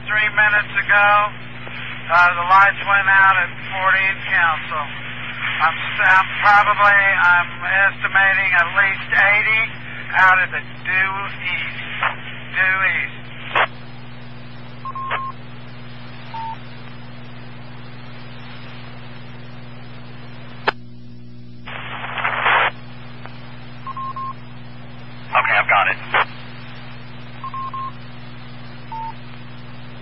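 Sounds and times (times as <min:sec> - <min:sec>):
bursts of radio static: 0:00.0 - 0:20.8, 0:21.4 - 0:30.0
steady hum under hiss: 0:00.0 - 0:30.0
short radio beeps: 0:14.8 - 0:15.4, 0:16.3 - 0:16.6, 0:23.8 - 0:24.4, 0:27.4 - 0:28.0, 0:28.9 - 0:29.2.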